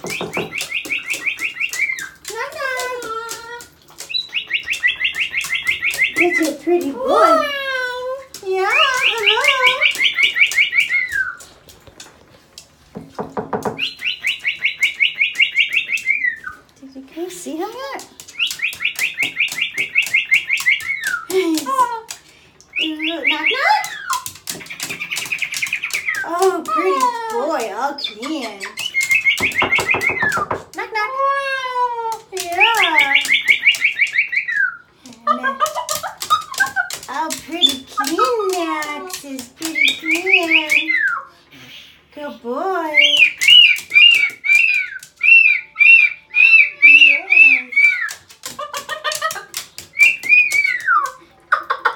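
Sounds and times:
cockatoo chattering: 22.8 - 30.7, 32.4 - 51.9
cockatoo high pulsing calls: 28.0 - 30.6, 43.0 - 51.2
cockatoo calling high notes: 43.2 - 48.2.

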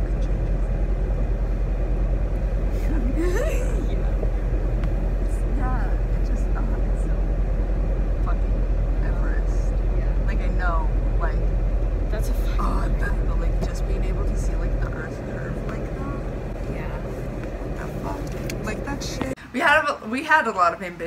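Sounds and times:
car cabin rumble: 0.0 - 19.4.

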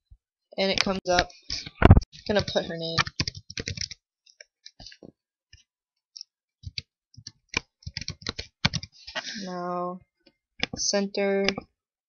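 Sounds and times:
keyboard typing clicks: 2.3 - 4.0, 6.6 - 9.0.

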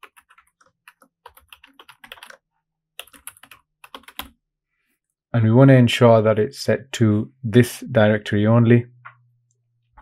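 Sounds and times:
typing on computer keyboard: 0.0 - 2.4, 3.0 - 4.3.

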